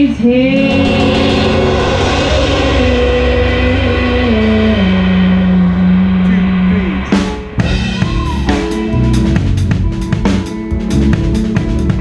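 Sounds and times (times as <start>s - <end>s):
bass and drums: 0.0s - 12.0s
person singing long notes: 0.3s - 7.2s
cymbal wash: 0.3s - 9.7s.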